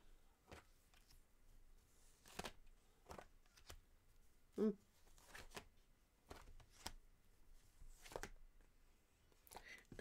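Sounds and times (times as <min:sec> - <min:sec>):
cards being shuffled: 0:02.0 - 0:03.9, 0:05.0 - 0:07.0, 0:07.9 - 0:08.4
person humming: 0:04.6 - 0:04.8.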